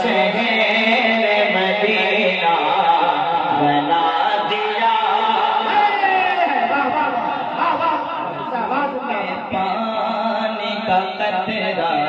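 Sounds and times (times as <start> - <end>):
man chanting devotional verse: 0.0 - 12.0.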